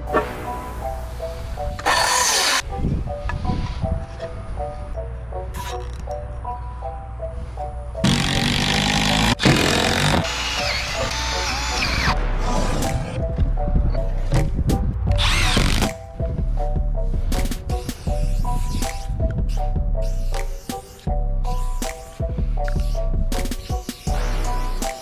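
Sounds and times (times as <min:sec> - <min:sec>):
background music melody: 0:00.0 - 0:25.0
cordless driver driving screws: 0:01.8 - 0:02.6.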